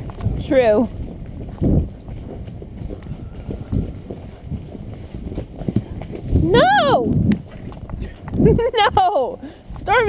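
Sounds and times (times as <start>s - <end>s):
horse hooves on dirt trail: 0.0s - 10.0s.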